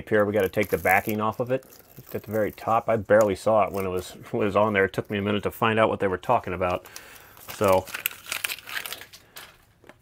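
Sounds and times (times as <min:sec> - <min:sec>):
paper crinkling: 0:00.1 - 0:05.5, 0:06.3 - 0:10.0
backing paper peeling off tape: 0:00.2 - 0:04.0.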